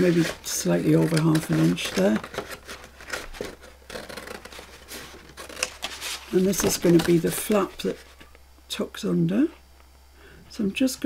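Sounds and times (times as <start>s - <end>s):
scissors cutting cardstock: 0.0s - 7.6s.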